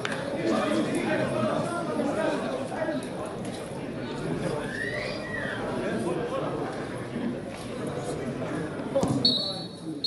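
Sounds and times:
people calling and talking: 0.0s - 10.0s.

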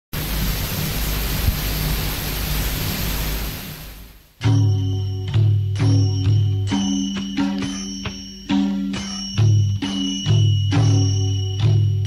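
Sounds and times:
loud rushing hiss: 0.2s - 4.4s.

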